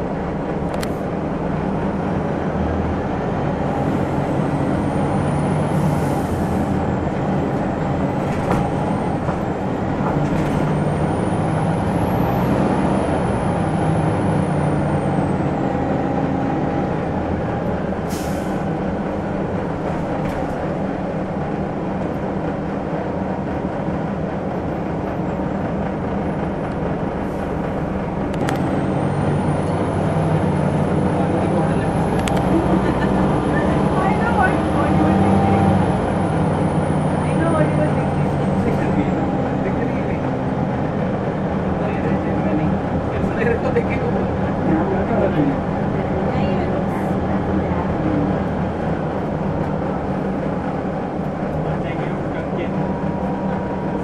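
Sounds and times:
bus diesel engine running: 0.0s - 54.0s.

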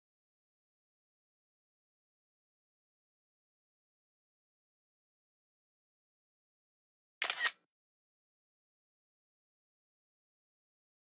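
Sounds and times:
camera shutter click: 7.2s - 7.6s.

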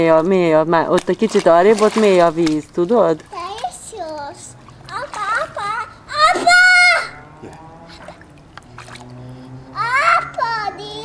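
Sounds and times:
little girl's voice: 3.3s - 7.2s, 9.5s - 11.0s
girl's high-pitched squeal: 6.1s - 7.2s.

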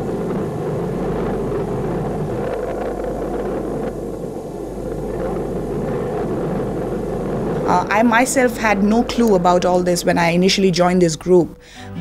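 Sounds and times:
low rumble of missile explosion: 0.0s - 10.4s.

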